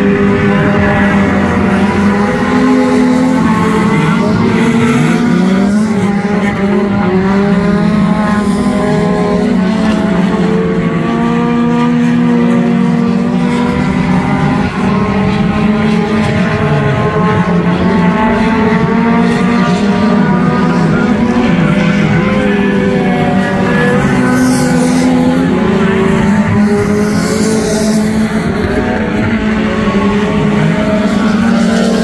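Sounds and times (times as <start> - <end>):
race car engines accelerating: 0.0 - 32.0.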